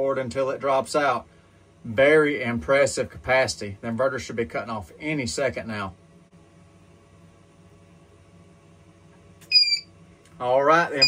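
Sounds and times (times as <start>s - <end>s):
inverter electrical hum and hiss: 0.0s - 11.0s.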